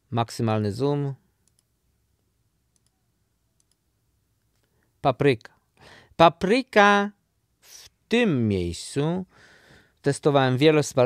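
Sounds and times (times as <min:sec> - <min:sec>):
computer mouse clicks: 0:01.4 - 0:01.7, 0:02.7 - 0:03.0, 0:03.6 - 0:03.8.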